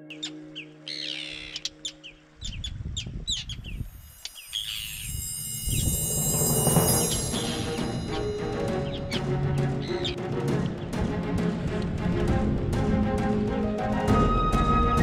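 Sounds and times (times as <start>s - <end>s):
birds chirping: 0.0s - 11.0s
wind rumble on microphone: 2.4s - 8.3s, 10.9s - 13.2s
music with drums: 5.4s - 15.0s.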